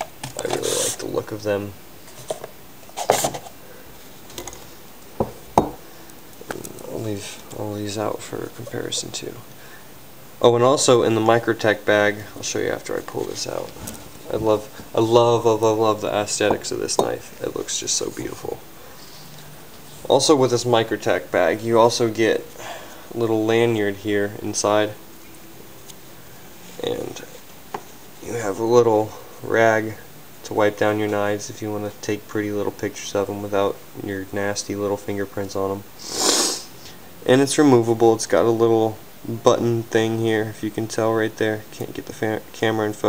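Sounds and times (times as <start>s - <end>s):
person speaking: 0.0s - 2.4s, 6.4s - 9.6s, 10.4s - 19.3s, 19.9s - 25.0s.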